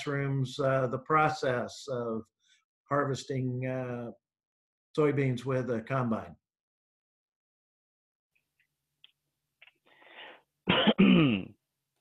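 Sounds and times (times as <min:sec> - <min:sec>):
man clearing his throat: 0:10.7 - 0:11.6.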